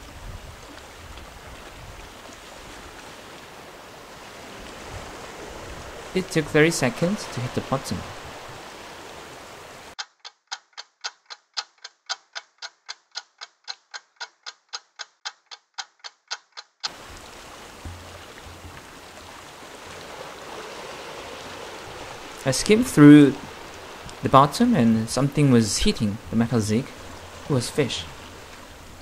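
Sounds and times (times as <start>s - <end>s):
outdoor wind: 0.0s - 29.0s
ticking clock: 10.0s - 16.9s.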